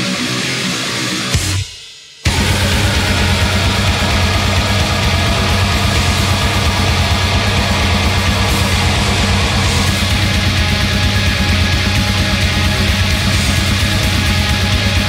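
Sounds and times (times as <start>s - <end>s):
heavy metal music: 0.0s - 15.0s.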